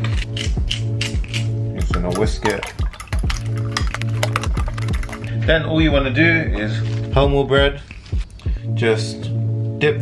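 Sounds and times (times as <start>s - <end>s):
fork whisking eggs in a bowl: 0.0s - 5.3s
background music with held notes: 0.0s - 10.0s.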